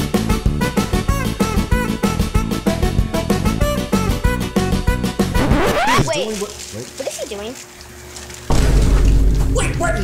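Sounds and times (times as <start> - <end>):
background music: 0.0 - 6.0
wobbling sliding tones: 5.4 - 6.1.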